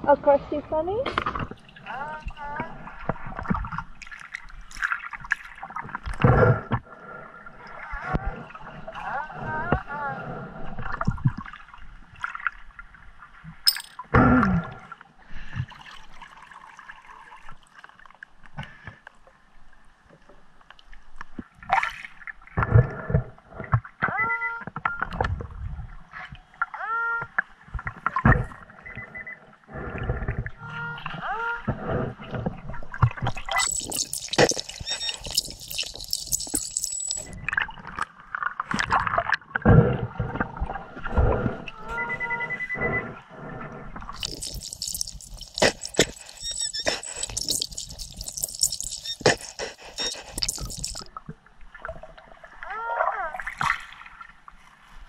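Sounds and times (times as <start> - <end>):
hissing water noise: 33.4 - 37.4, 44.2 - 51.1
water sloshing: 33.5 - 37.4.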